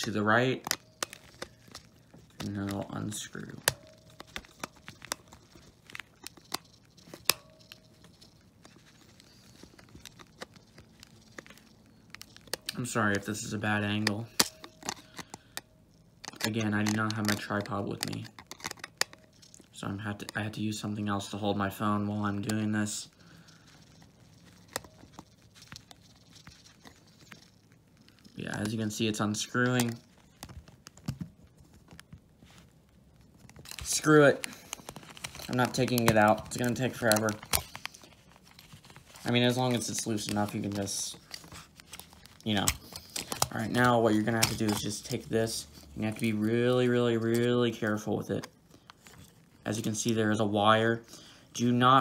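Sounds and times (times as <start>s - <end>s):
screwdriver clicks and scrapes: 14.0s - 15.6s, 16.2s - 19.7s
screwdriver clicking on plastic: 18.0s - 19.2s.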